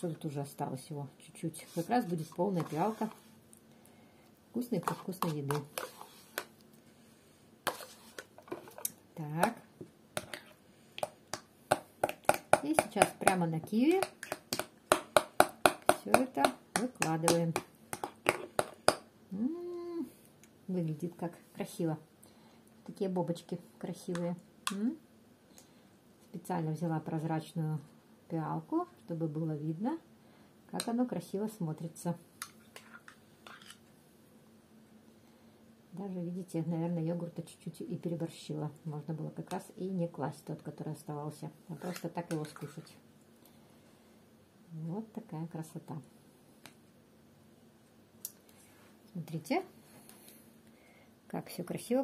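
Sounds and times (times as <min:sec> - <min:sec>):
spoon scraping ceramic bowl: 0:01.6 - 0:03.2, 0:04.8 - 0:06.5, 0:07.7 - 0:08.9, 0:41.7 - 0:42.9.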